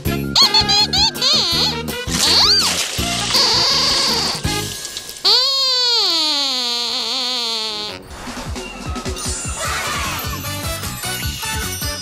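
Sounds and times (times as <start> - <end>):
toy squeaker gliding down: 0.4 - 4.4, 5.3 - 8.0.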